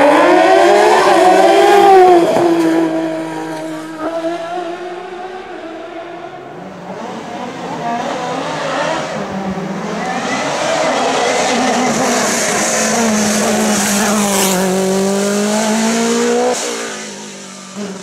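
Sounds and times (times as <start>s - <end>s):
race car engine at high revs: 0.0s - 18.0s.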